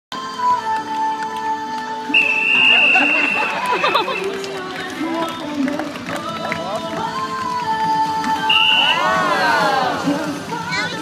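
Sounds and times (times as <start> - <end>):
whistle long high blast: 2.1 - 3.9, 8.5 - 9.2
audience chatter: 2.1 - 11.0.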